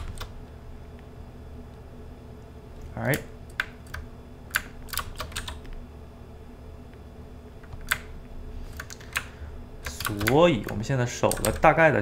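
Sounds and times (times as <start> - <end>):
computer keyboard clicks: 3.1 - 5.7, 7.6 - 8.1, 8.7 - 11.7.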